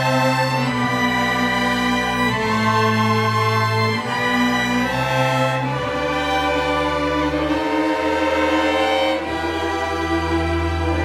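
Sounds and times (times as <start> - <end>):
string orchestra playing chords: 0.0 - 11.0.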